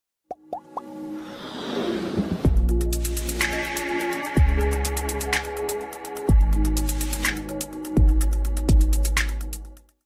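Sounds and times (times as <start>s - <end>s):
whoosh: 1.2s - 2.8s.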